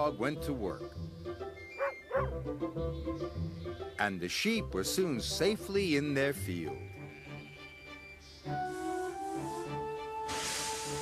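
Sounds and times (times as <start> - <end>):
background music: 0.0 - 11.0
dog barking: 1.8 - 2.3.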